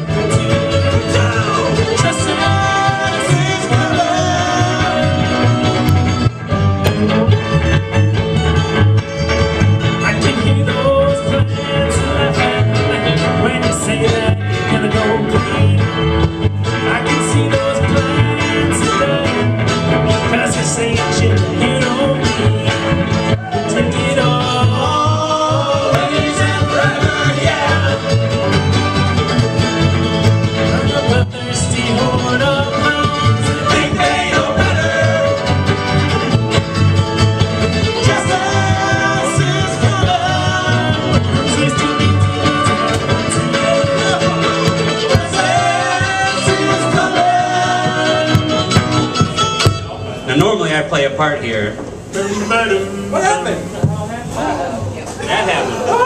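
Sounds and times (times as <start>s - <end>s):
person singing: 0.0s - 5.8s, 10.0s - 28.6s, 30.5s - 36.0s, 37.6s - 48.8s
string band playing bluegrass: 0.0s - 56.0s.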